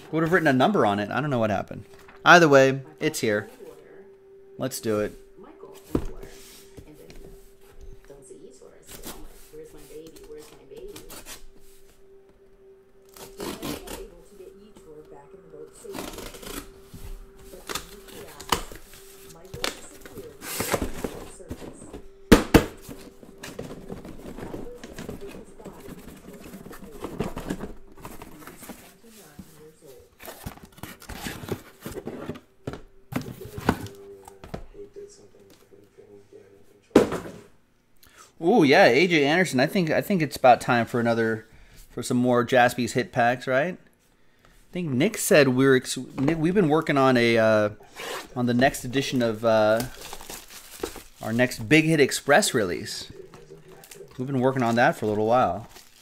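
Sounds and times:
faint hum: 0.0 - 56.0
cardboard rustling: 4.8 - 12.2, 15.4 - 34.7, 45.1 - 56.0
tape tearing: 13.0 - 14.1, 15.9 - 20.9
boxes knocking: 19.5 - 28.9.

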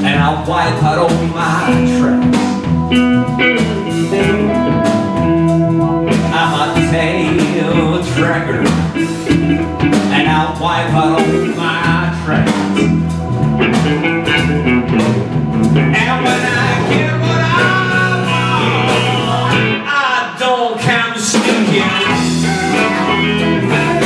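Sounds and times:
bending lead guitar line: 0.0 - 20.0, 21.6 - 24.0
blues band playing: 0.0 - 24.0.

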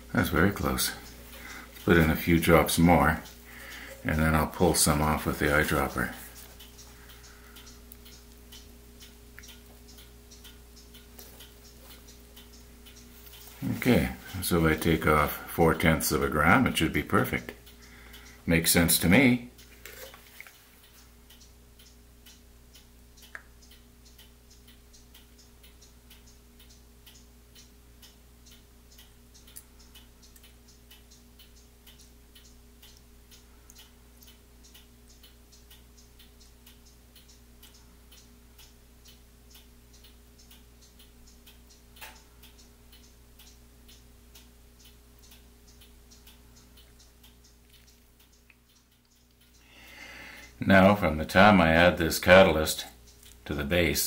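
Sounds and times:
faint steady ticking: 0.0 - 54.0.

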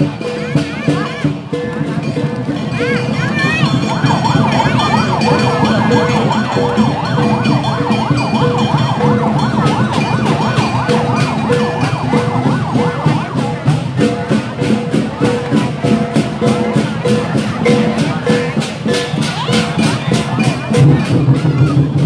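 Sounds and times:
crowd noise: 0.0 - 22.0
festival drumming: 0.0 - 22.0
sharp percussion strikes: 0.0 - 22.0
emergency siren warbling: 3.5 - 22.0.

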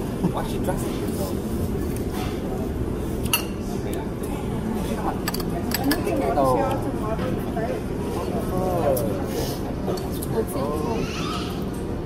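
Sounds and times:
low hum of restaurant noise: 0.0 - 12.0
faint voices: 3.6 - 12.0.

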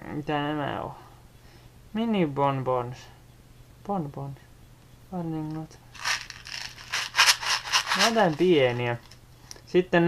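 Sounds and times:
plastic packaging crinkling: 6.0 - 9.2.

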